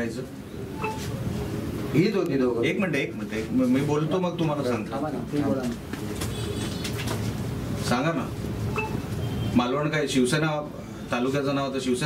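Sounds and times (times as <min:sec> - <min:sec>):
low overlapping chatter: 0:00.0 - 0:06.8.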